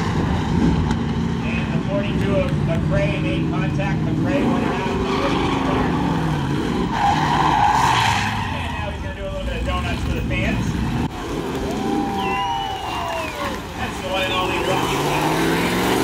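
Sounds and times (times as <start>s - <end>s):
race car engines revving: 0.0s - 16.0s.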